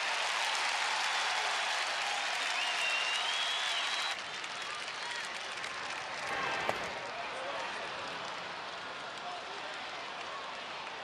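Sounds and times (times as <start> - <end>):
crowd applauding and cheering: 0.0 - 11.0.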